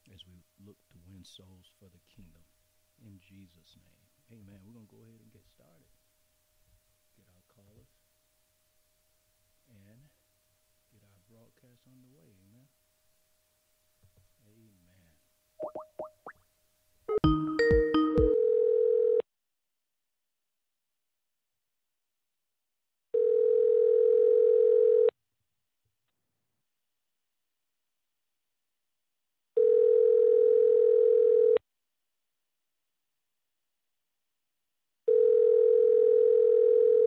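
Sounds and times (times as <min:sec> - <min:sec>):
faint steady tone: 0:00.0 - 0:15.7
rising electronic blips: 0:15.6 - 0:16.4
telephone ringback tone: 0:17.1 - 0:19.2, 0:23.2 - 0:25.1, 0:29.6 - 0:31.6, 0:35.1 - 0:37.0.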